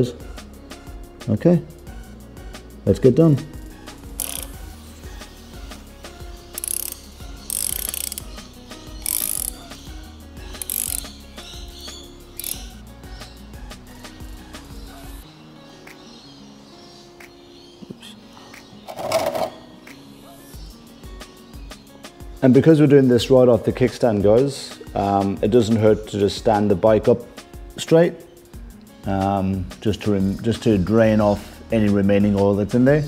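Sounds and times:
background music: 0.0s - 33.0s
socket ratchet clicking: 4.1s - 4.6s, 6.6s - 9.7s, 10.5s - 11.2s, 12.4s - 12.8s.

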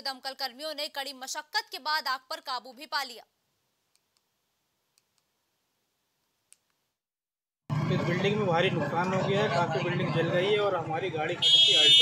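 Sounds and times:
woman narrating: 0.0s - 3.3s.

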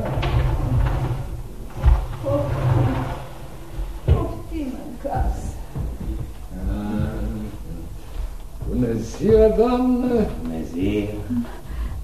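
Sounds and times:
heavy thud: 0.0s - 10.4s
low rumbling: 0.0s - 12.0s.

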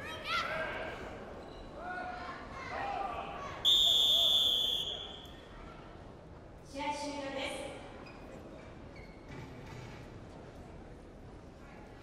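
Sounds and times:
referee's whistle blast: 3.7s - 5.2s.

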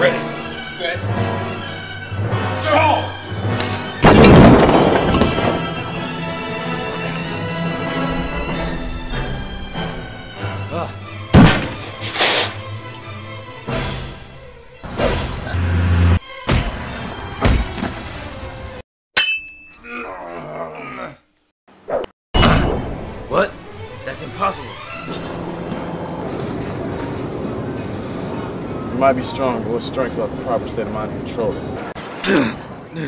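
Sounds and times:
background music: 0.0s - 18.8s, 22.4s - 28.9s
metallic clang: 3.6s - 5.6s, 19.2s - 19.8s
bricks crashing down: 4.0s - 5.7s
sharp hits: 11.3s - 12.7s.

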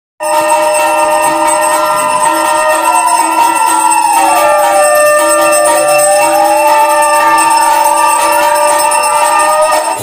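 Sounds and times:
bells ringing continuously: 0.2s - 10.0s.

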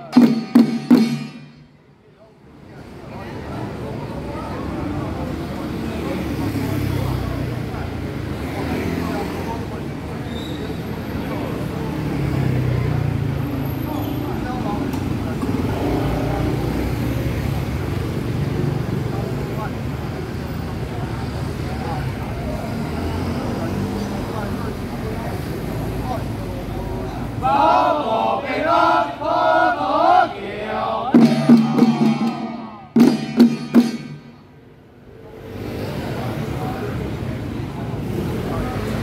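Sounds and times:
street traffic: 0.0s - 39.0s
men chanting together: 27.4s - 32.8s.

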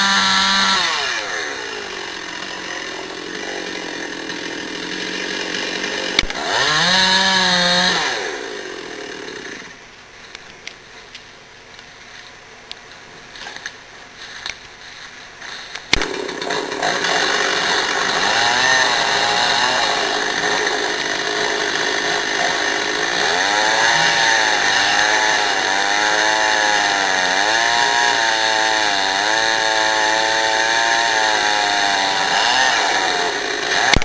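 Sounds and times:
chainsaw cutting wood: 0.0s - 9.8s, 15.4s - 34.0s.

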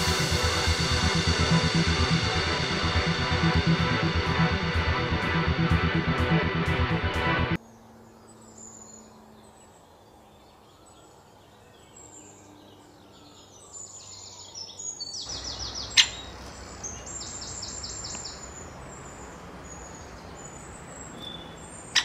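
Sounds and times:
outdoor background hiss: 7.6s - 22.0s.

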